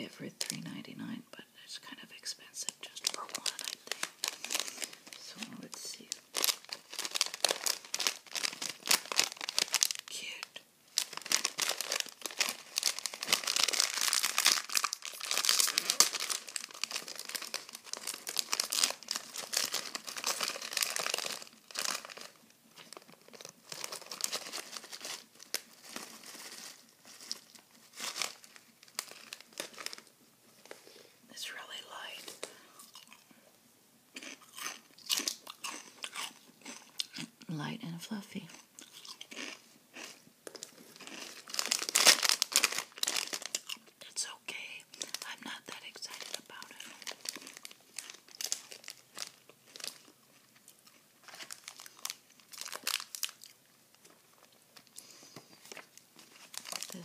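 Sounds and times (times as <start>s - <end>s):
plastic bag crackling: 2.9s - 30.8s, 40.4s - 43.9s, 44.9s - 57.0s
chips crunching: 3.2s - 10.4s, 11.0s - 30.1s, 34.2s - 37.3s, 38.5s - 43.9s, 45.0s - 57.0s.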